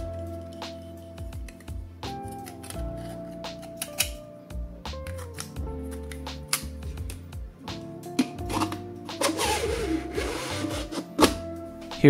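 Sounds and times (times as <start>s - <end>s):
soft background music: 0.0s - 12.0s
plastic shell rubbing and scraping: 8.2s - 11.5s.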